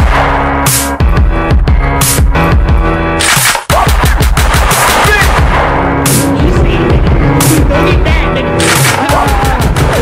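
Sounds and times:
hip-hop beat: 0.0s - 10.0s
rapid sharp bangs: 3.2s - 6.4s, 8.6s - 10.0s.

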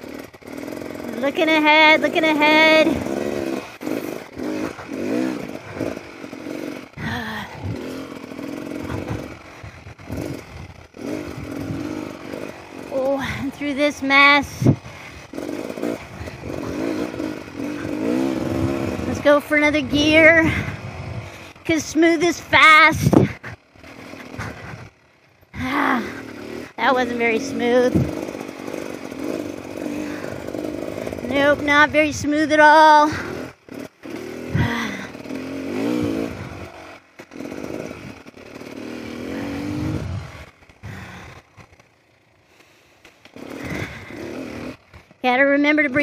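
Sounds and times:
dirt bike engine revving: 0.0s - 46.0s.

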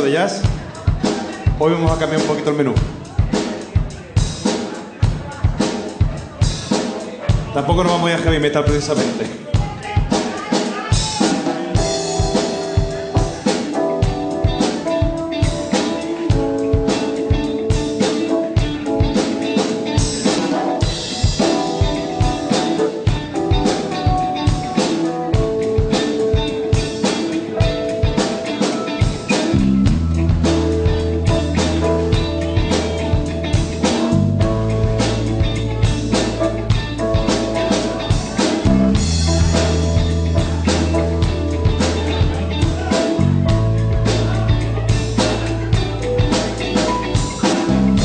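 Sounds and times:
drum kit playing a beat: 0.0s - 48.0s
rock-blues band: 0.0s - 48.0s
held guitar notes: 11.5s - 48.0s.

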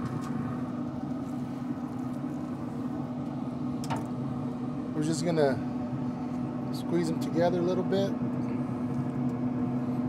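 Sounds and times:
grill fan humming: 0.0s - 10.0s.

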